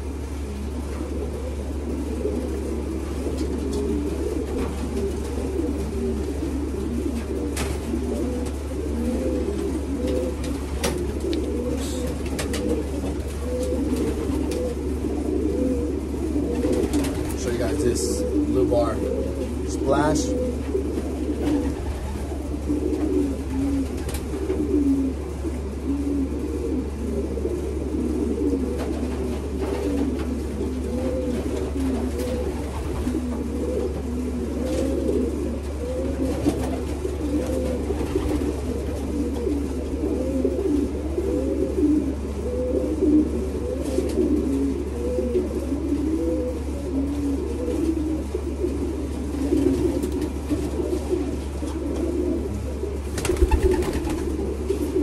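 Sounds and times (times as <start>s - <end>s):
pigeons cooing: 0.0s - 55.0s
steady low hum: 0.0s - 55.0s.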